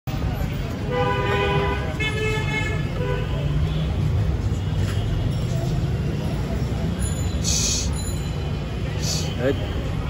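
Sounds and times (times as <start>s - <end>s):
road traffic rumbling: 0.1s - 10.0s.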